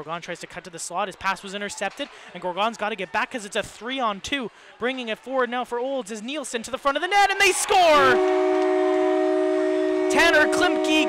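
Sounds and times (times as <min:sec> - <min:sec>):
crowd cheering: 0:06.9 - 0:11.0
goal horn held chord: 0:07.9 - 0:11.0.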